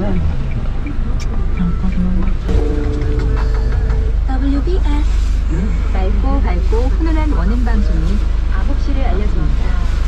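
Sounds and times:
car engine humming: 0.0 - 10.0.

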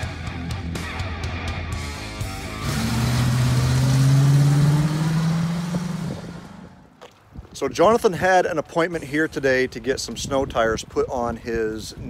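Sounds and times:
car accelerating past: 2.5 - 6.8.

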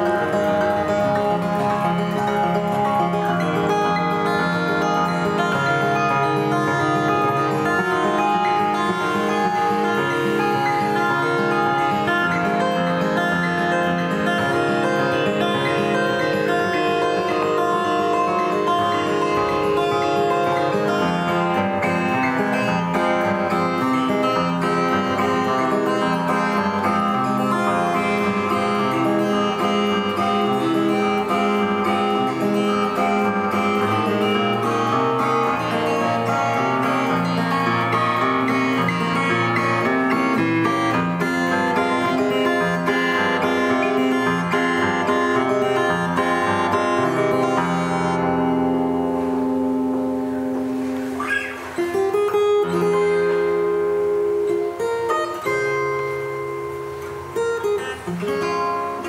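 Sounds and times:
fingerstyle acoustic guitar: 0.0 - 59.0.

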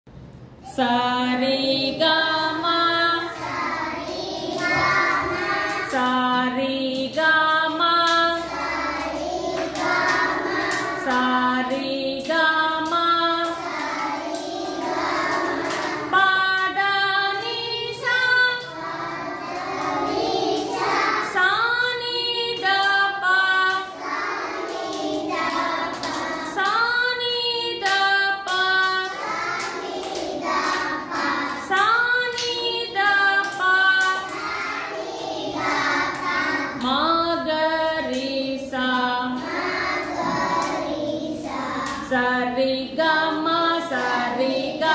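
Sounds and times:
children singing: 1.8 - 6.6, 7.5 - 44.9.

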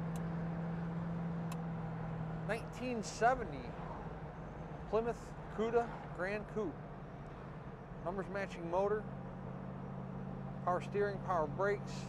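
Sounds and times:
car engine droning at cruise: 0.0 - 12.0
road and tyre noise: 0.0 - 12.0.

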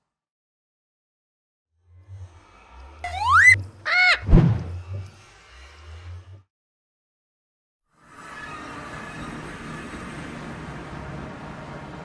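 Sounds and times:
short rising and falling tone: 3.0 - 3.6, 4.2 - 4.8
whistle sweeping upward: 3.0 - 3.6
heavy low thud: 4.3 - 4.8.

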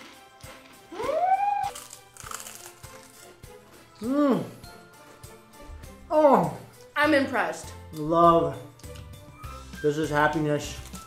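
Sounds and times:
crunching wafer cookie: 0.0 - 3.4
background music: 0.0 - 11.0.

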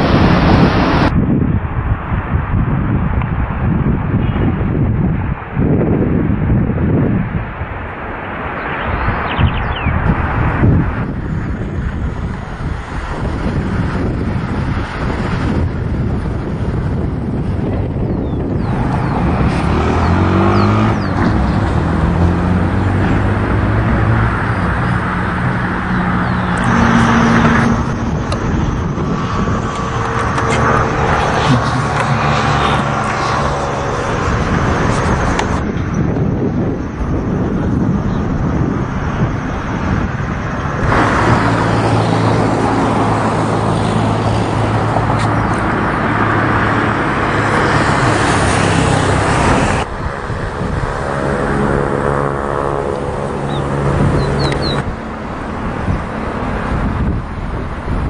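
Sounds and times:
outdoor rushing noise: 0.0 - 58.0
low engine-like hum: 25.7 - 38.8.

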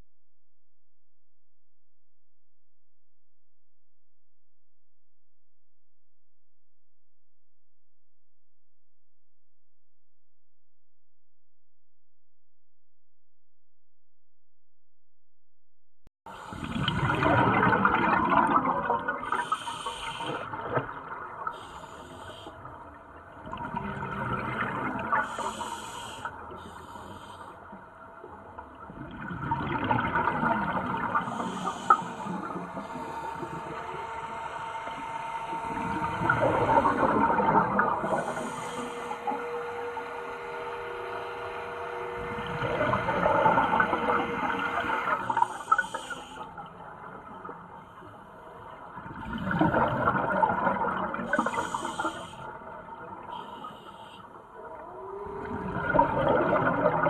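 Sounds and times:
exhaled bubbles rushing underwater: 16.3 - 26.7, 28.2 - 48.0, 48.6 - 53.8, 54.5 - 57.0
regulator hisses: 45.4 - 46.4, 51.4 - 52.5.

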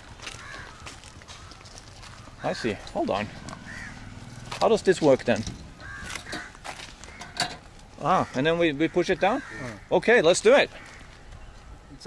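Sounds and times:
scattered knocks and light clatter: 4.5 - 7.9.

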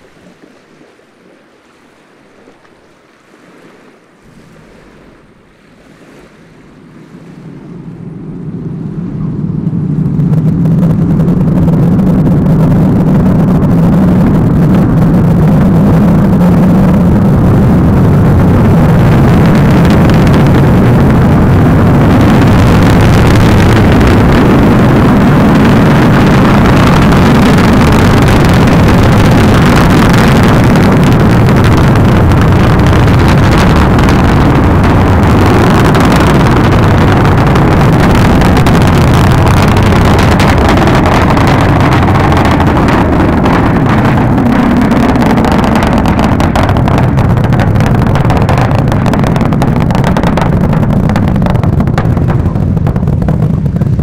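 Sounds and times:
rocket engine roar: 7.0 - 54.0.

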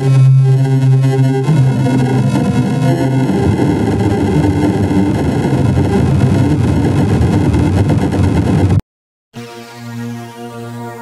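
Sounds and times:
distorted churning noise: 0.0 - 8.8.

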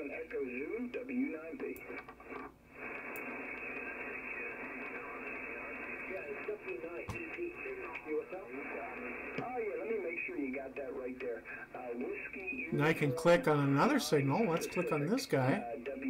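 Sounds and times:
faint garbled radio voices: 0.0 - 16.0
shortwave radio hiss: 0.0 - 16.0.

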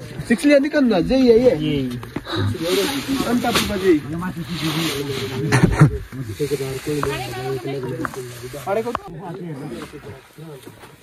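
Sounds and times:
sack rustling: 2.3 - 5.6.

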